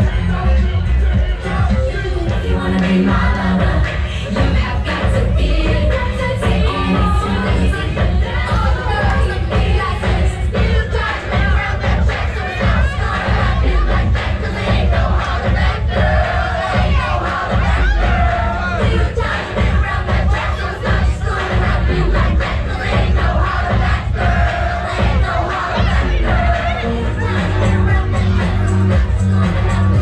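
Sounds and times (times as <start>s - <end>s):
crowd singing and shouting: 0.0s - 30.0s
loud dance music: 0.0s - 30.0s.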